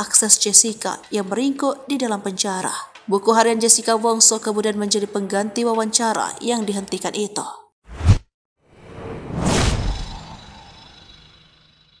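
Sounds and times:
whoosh: 7.9s - 11.7s.

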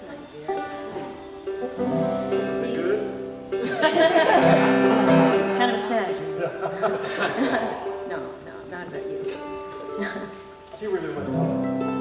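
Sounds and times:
bluegrass string band: 0.0s - 12.0s.

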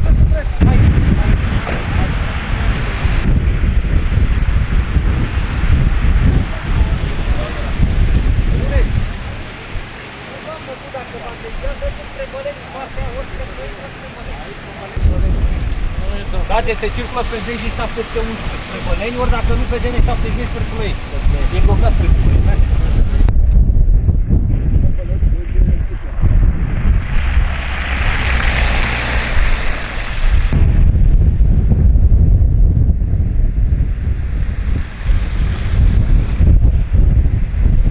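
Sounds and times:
cars on slushy road: 0.0s - 23.1s, 26.0s - 30.9s
blizzard wind buffeting microphone: 0.0s - 37.9s
hissing gust: 0.0s - 37.9s
distant people talking: 6.3s - 23.2s.

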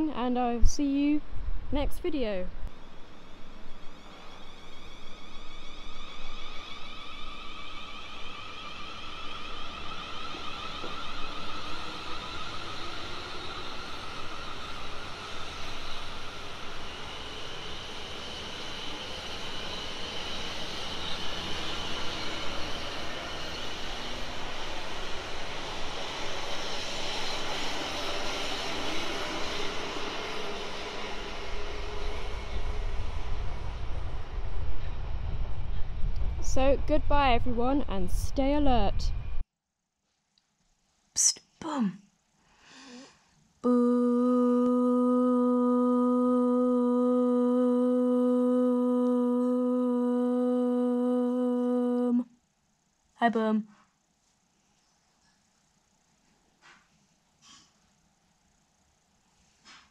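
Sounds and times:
electric train motor whine: 2.6s - 37.1s, 43.6s - 52.2s
wheels on rails: 2.7s - 36.4s
low rumble: 31.0s - 39.4s.

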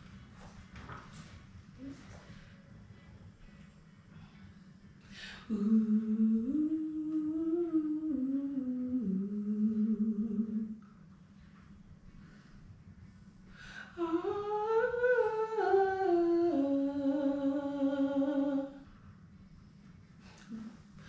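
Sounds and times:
person singing wordless vocal: 5.2s - 10.8s, 13.8s - 18.8s.

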